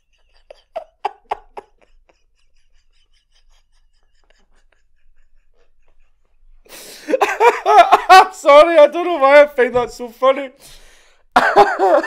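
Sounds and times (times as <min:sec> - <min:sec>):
man laughing helplessly: 0:00.0 - 0:08.8, 0:11.4 - 0:12.0.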